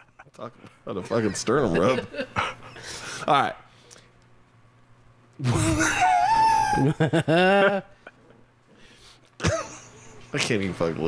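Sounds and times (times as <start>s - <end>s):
man laughing: 0.0s - 0.4s, 1.0s - 2.8s, 5.4s - 8.3s, 9.4s - 10.5s.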